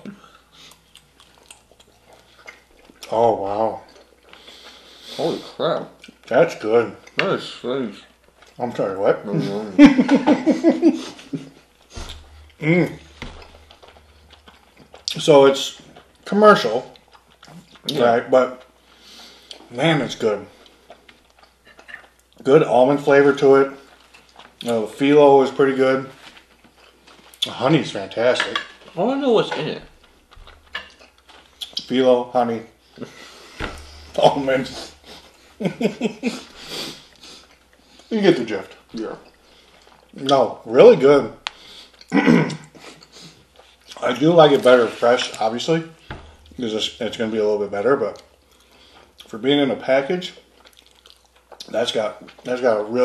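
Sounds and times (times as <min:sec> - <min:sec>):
low room hum: 0:00.0 - 0:53.0
wet chewing clicks and smacks: 0:00.1 - 0:03.2, 0:03.8 - 0:04.8, 0:05.9 - 0:08.8, 0:11.2 - 0:25.2, 0:26.3 - 0:27.6, 0:29.9 - 0:32.0, 0:34.9 - 0:40.4, 0:41.4 - 0:46.8, 0:48.0 - 0:49.4, 0:50.3 - 0:52.5
man laughing: 0:09.2 - 0:11.6, 0:35.6 - 0:36.5.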